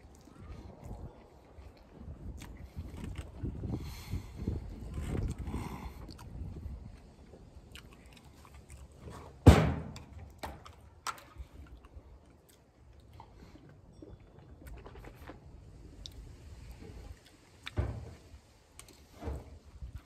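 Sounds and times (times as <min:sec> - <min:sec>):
wind rumble on microphone: 0:00.0 - 0:07.8, 0:14.6 - 0:20.0
man chewing food: 0:00.0 - 0:09.4, 0:10.0 - 0:19.2
loud thump: 0:09.4 - 0:09.9.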